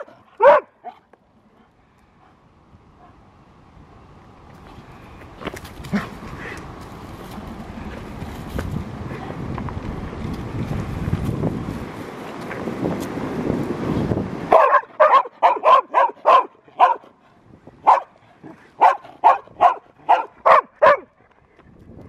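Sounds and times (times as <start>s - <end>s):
dog barking: 0.0s - 1.0s, 14.5s - 17.1s, 17.8s - 18.2s, 18.8s - 21.1s.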